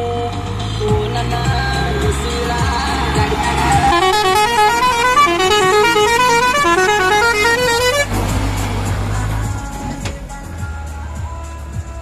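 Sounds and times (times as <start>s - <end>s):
heavy bass background music: 0.0s - 12.0s
musical vehicle horn tune: 3.3s - 8.2s.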